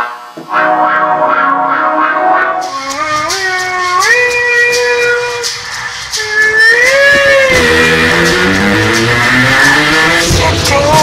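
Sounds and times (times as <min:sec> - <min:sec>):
rock band music: 0:00.0 - 0:11.0
sliding lead guitar tone: 0:00.0 - 0:11.0
heavy bass line: 0:00.3 - 0:04.5, 0:07.1 - 0:11.0
cymbal ticks: 0:01.7 - 0:11.0.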